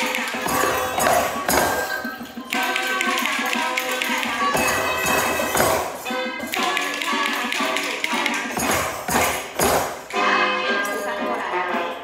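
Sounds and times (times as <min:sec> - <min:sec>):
recorded music: 0:00.0 - 0:12.0.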